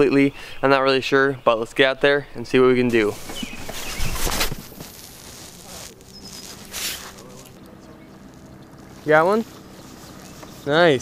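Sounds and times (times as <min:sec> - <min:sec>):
clothing brushing microphone: 0:02.9 - 0:11.0.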